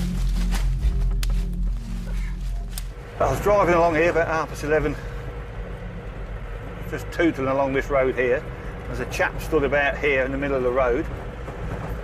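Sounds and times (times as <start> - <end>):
road noise: 0.0 - 12.0
van engine rumble: 0.0 - 12.0.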